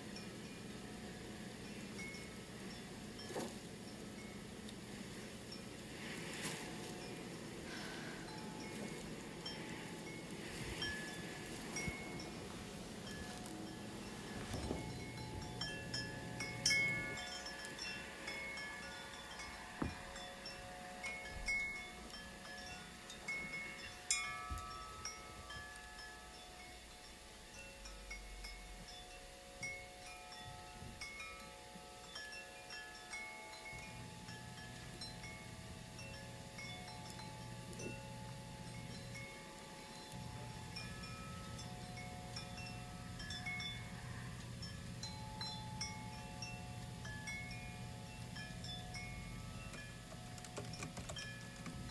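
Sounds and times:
bell-like chimes ringing: 7.8s - 35.2s.

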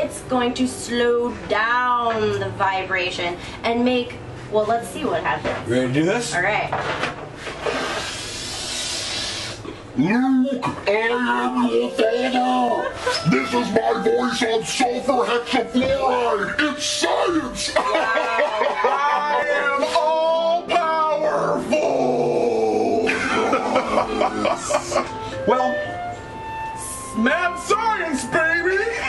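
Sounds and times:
gas hissing from balloon: 7.4s - 9.8s
man making deep laughing calls: 21.7s - 25.2s.

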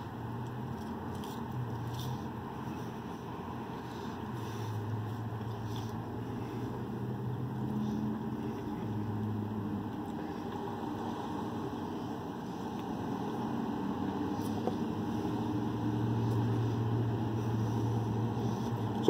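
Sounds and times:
truck engine hum: 0.0s - 19.0s.

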